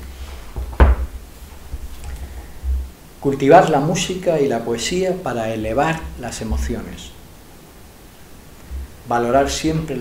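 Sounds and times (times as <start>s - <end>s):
book thumping on table: 0.5s - 1.9s.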